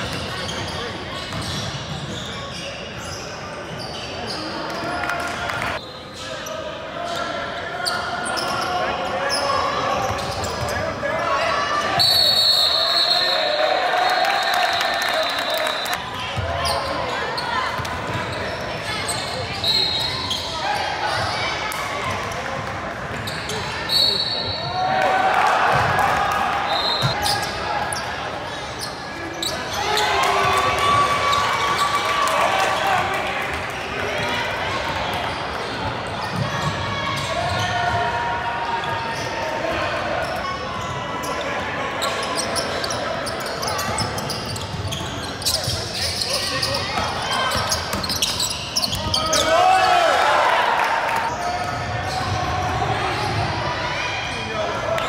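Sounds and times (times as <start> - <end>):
indistinct shouting and talk: 0.0 - 55.0.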